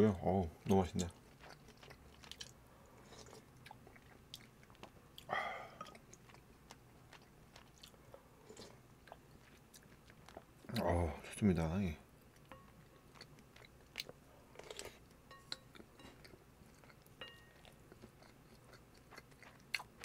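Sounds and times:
close chewing: 0.7s - 11.0s, 12.3s - 20.0s.

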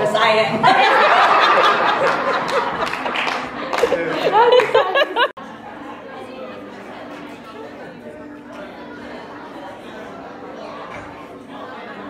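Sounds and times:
crowd chatter in a room: 0.0s - 12.0s.

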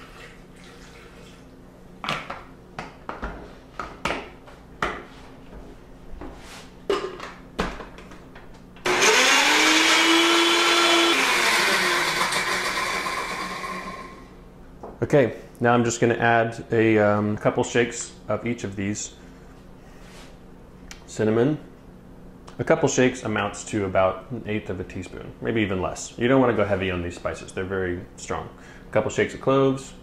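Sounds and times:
blender running: 8.8s - 14.3s.

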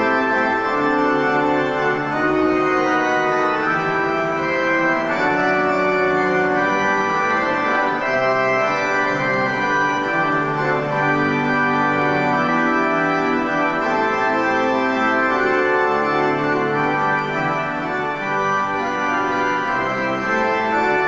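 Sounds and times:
organ playing slow chords: 0.0s - 21.0s.

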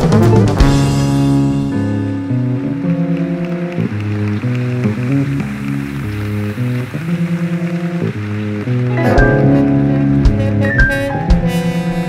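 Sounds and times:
jazz fusion band playing: 0.0s - 12.0s.

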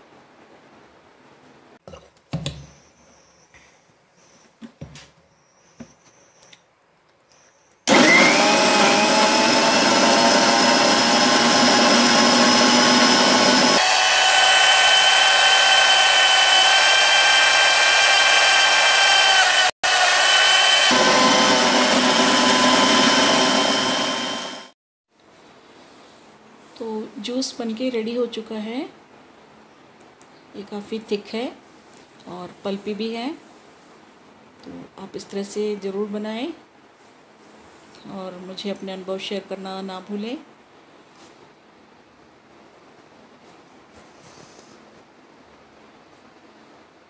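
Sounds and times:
electric blender running: 7.9s - 24.8s.

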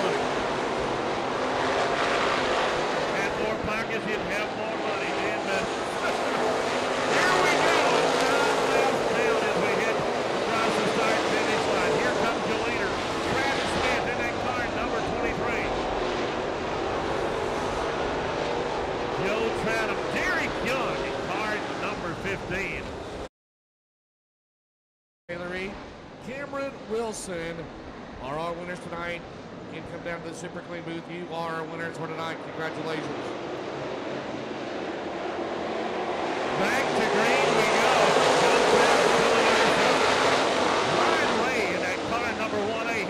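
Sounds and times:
people's voices: 0.0s - 0.3s, 3.1s - 15.7s, 19.2s - 22.9s, 36.6s - 43.0s
race car engines: 0.0s - 23.3s, 25.3s - 43.0s.

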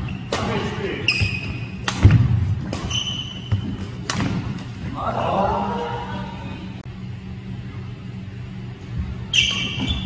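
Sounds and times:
racket hitting shuttlecock: 0.1s - 4.8s
shoes squeaking on wooden floor: 1.1s - 1.8s, 2.8s - 3.9s.

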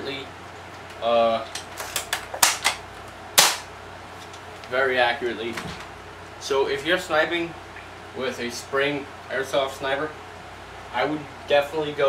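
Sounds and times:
rifle bolt snap: 3.4s - 3.7s.

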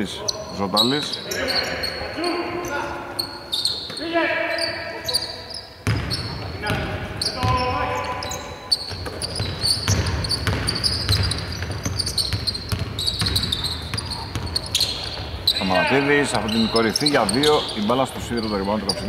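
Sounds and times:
voices calling out: 0.0s - 19.0s
basketball bouncing on hardwood: 8.9s - 15.3s.

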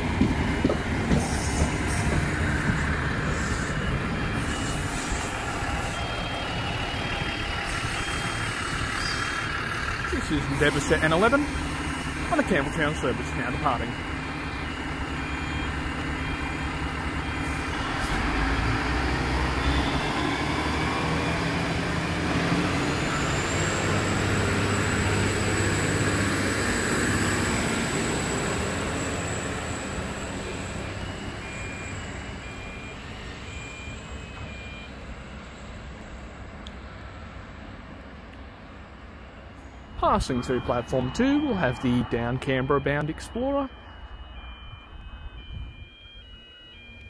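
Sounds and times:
diesel train engine accelerating: 0.0s - 47.0s
thin steady high whine: 39.5s - 47.0s.

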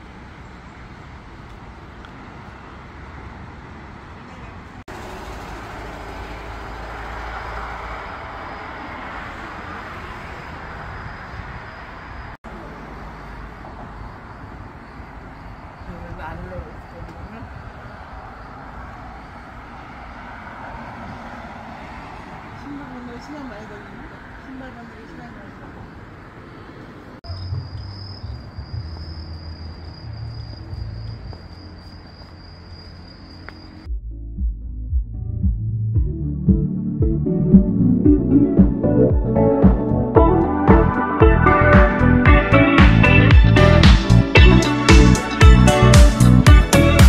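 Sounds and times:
cicadas singing: 7.2s - 33.9s
low rumble: 33.8s - 44.3s.

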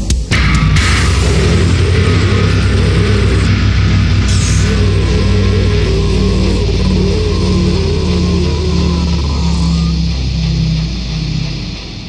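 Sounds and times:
electric bass playing: 0.0s - 12.0s
heavy metal song: 0.0s - 12.0s.

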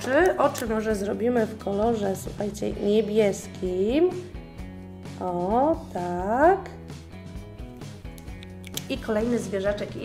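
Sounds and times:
background music melody: 0.0s - 10.0s.

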